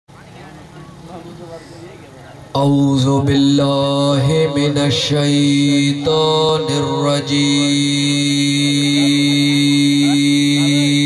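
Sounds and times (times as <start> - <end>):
faint background voices: 0.1 - 11.0.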